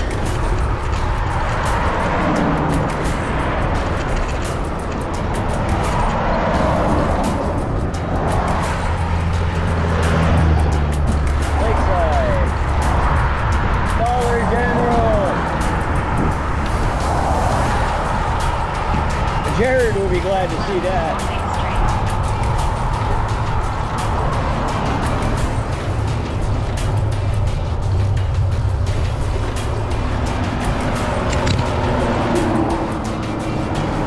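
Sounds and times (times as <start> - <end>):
cars passing: 0.0 - 34.0
vehicle engine rumble: 0.0 - 34.0
wind buffeting microphone: 0.0 - 34.0.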